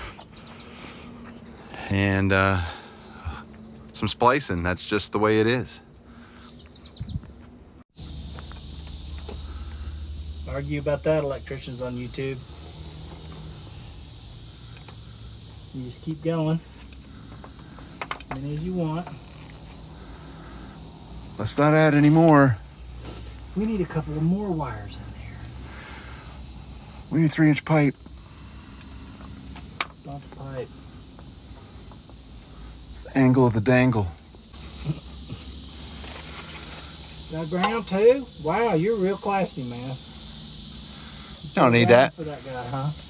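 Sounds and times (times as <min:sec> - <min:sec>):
insects shrilling: 0:00.0 - 0:43.0.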